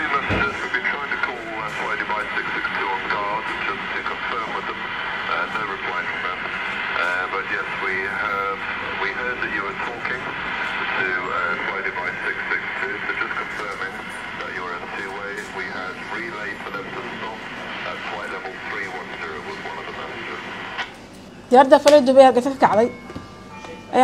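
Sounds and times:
people talking indistinctly: 0.0 - 24.0.

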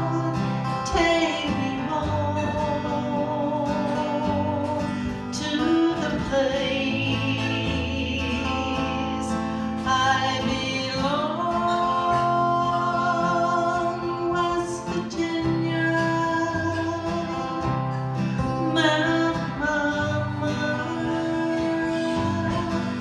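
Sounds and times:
strummed acoustic guitar: 0.0 - 23.0
woman singing: 0.0 - 23.0.

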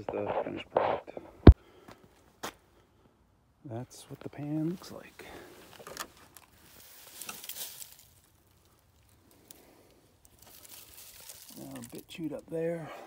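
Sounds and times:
dry leaves crinkling: 6.0 - 12.5.

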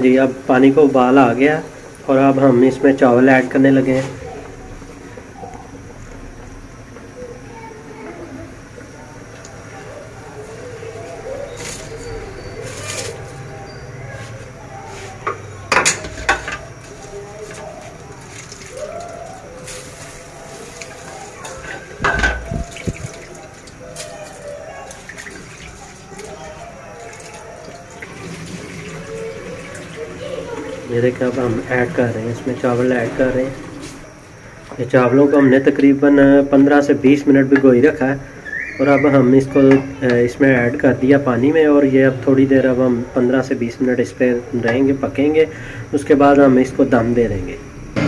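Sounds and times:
water boiling in a pot: 0.0 - 13.2, 15.2 - 35.0.

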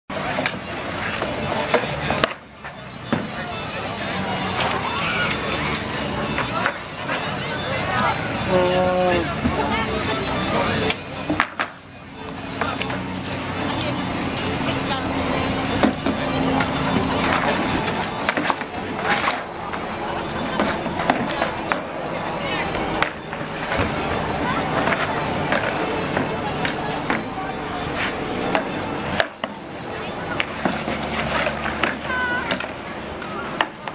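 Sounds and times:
outdoor background noise: 0.1 - 33.9
voices of players and onlookers: 0.1 - 33.9
hockey sticks clacking: 0.3 - 3.4, 5.5 - 8.6, 10.6 - 13.0, 15.6 - 33.9.

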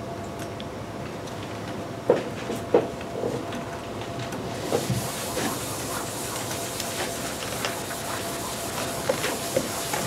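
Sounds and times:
eraser rubbing on chalkboard: 4.7 - 10.0.

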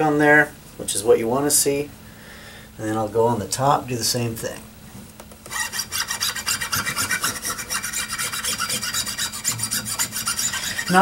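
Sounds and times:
rag rubbing guitar strings: 5.5 - 11.0.

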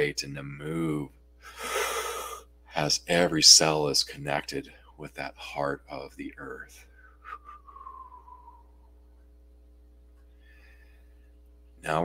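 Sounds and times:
steady low hum: 0.0 - 12.0
faint falling tone: 7.3 - 8.9.

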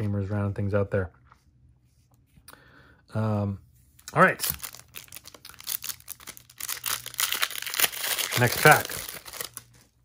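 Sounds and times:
foil wrapper tearing and crinkling: 4.4 - 10.0.

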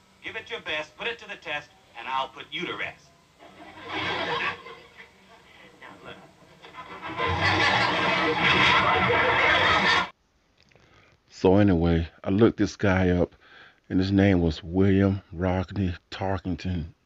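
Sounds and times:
television music: 0.0 - 10.2
voices from television: 0.2 - 10.2.

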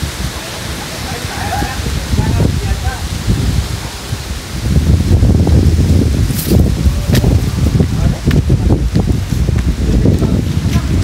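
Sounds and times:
wind buffeting microphone: 0.0 - 11.0
microphone handling noise: 1.7 - 11.0.

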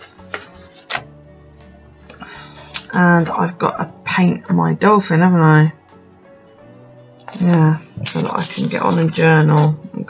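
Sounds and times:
paper page flicks: 0.0 - 1.1
soft background music: 0.0 - 10.0.

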